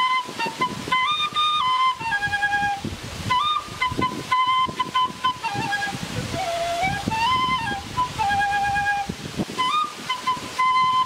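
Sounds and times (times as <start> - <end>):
end-blown flute melody: 0.0 - 11.0.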